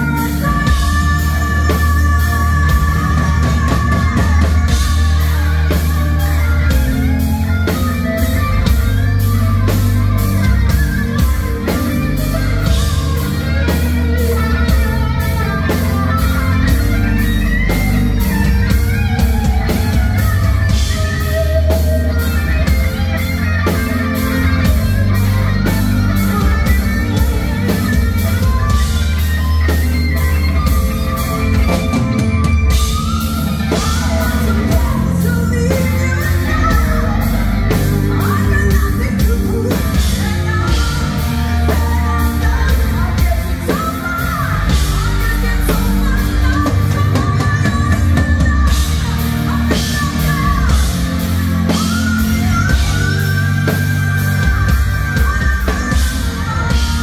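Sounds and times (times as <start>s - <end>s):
electric guitar lead bent notes: 0.0s - 57.0s
rock band playing live: 0.0s - 57.0s.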